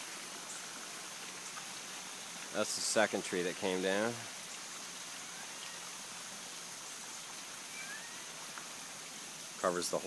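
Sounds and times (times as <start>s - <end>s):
faint high-pitched whine: 0.0s - 10.0s
running water: 0.0s - 10.0s.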